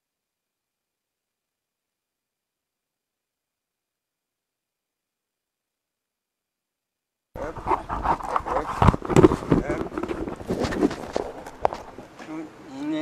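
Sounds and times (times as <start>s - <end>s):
knocks and handling noise: 7.4s - 12.3s.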